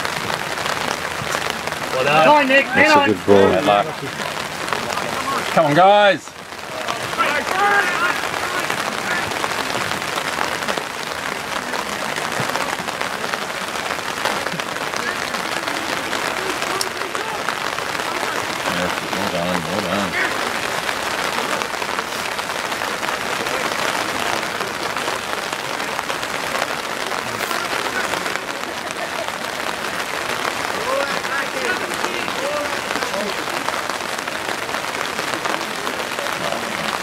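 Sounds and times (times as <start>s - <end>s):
distant shouts of players: 6.6s - 10.6s.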